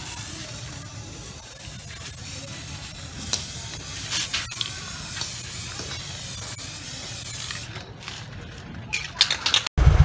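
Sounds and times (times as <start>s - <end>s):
spray paint can hissing: 0.0s - 9.6s.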